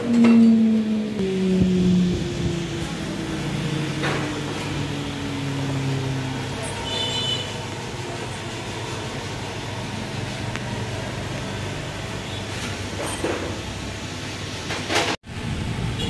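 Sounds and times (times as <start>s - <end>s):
spindle motor winding down: 0.0s - 6.9s.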